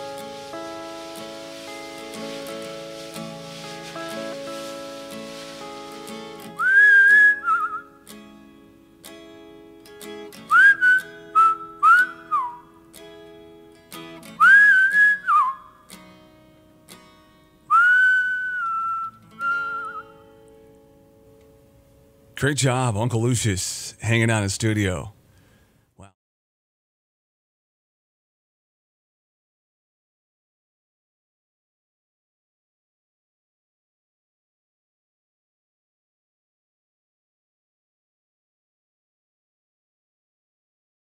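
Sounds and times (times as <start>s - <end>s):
guitars playing slow chords: 0.0s - 17.8s, 19.2s - 22.4s
person whistling a melody: 6.1s - 8.0s, 10.5s - 12.7s, 14.4s - 15.8s, 17.7s - 20.2s.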